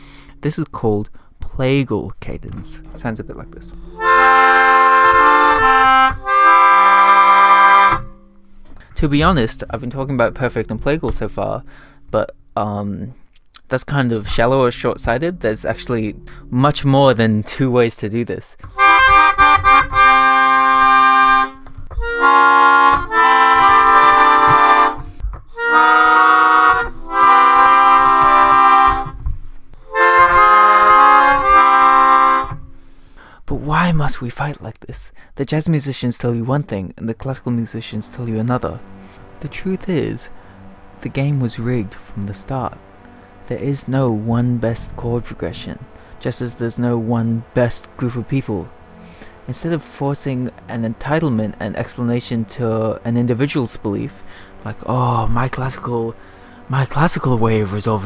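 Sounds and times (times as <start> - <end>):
melodica chords: 0.0 - 12.9, 13.8 - 18.0, 18.6 - 34.2, 37.4 - 58.0.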